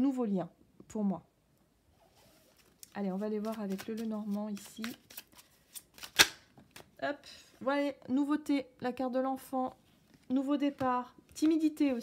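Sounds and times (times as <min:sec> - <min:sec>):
cards clicking and rustling: 0:02.6 - 0:06.9
card snapping: 0:03.4 - 0:06.9.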